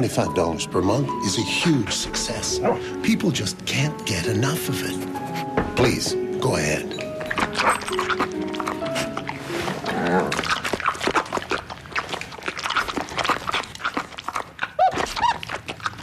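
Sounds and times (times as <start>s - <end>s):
soft background music: 0.0s - 14.2s
dog eating from a plate: 10.3s - 16.0s.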